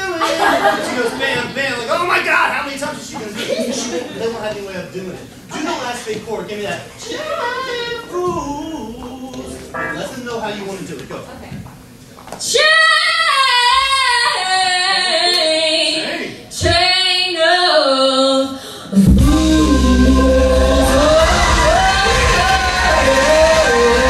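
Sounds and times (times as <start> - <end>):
woman singing: 12.4 - 24.0
live band with drums: 19.0 - 24.0.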